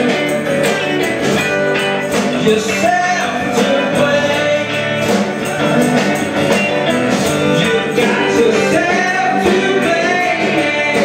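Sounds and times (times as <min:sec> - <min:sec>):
live rock band playing: 0:00.0 - 0:11.0
person singing: 0:02.2 - 0:06.1, 0:07.4 - 0:11.0.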